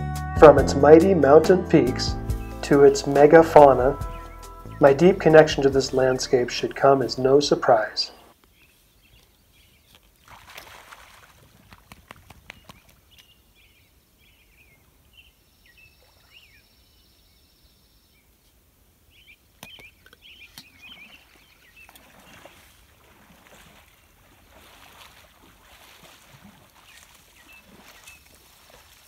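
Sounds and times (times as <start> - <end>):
high bird chirps: 4.0 - 4.9
water sloshing and splashing: 9.8 - 13.3, 20.0 - 29.0.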